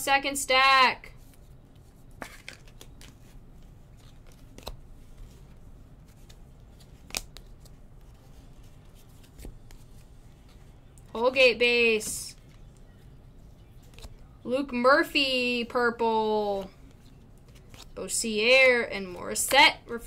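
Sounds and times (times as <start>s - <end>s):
cards sliding and rubbing: 1.2s - 10.7s, 16.8s - 18.0s.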